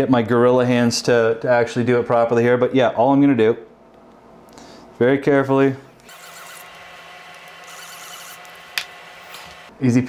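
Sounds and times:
faint room hum: 0.0s - 10.0s.

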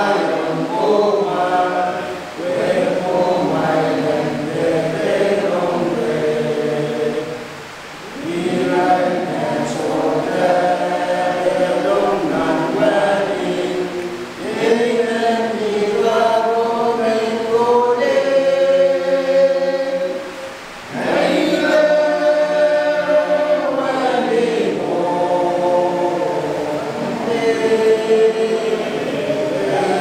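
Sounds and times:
men's choir singing a hymn: 0.0s - 30.0s.

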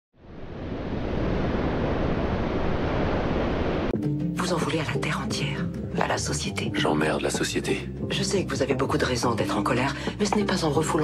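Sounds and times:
steady rushing noise: 0.3s - 3.9s.

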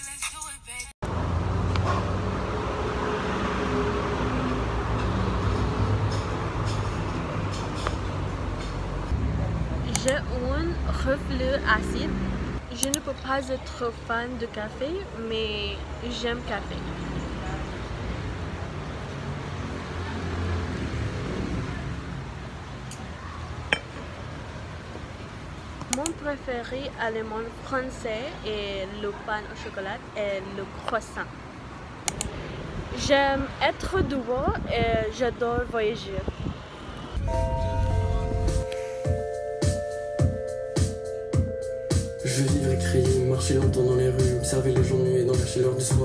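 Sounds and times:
low rumble of road traffic: 1.0s - 46.0s.

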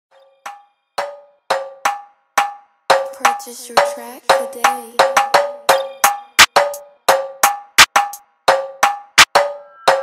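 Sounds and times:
bell-like synth notes: 0.1s - 1.4s, 5.7s - 6.4s, 9.4s - 10.0s.

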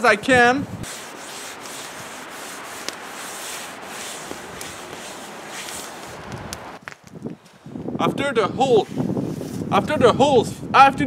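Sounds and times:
gloved hand scrubbing cast iron: 0.8s - 6.8s.

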